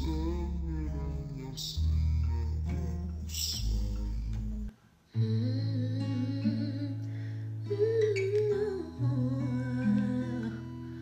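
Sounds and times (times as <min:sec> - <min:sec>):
sustained low bass: 0:00.0 - 0:04.7
hummed vocal melody: 0:00.0 - 0:11.0.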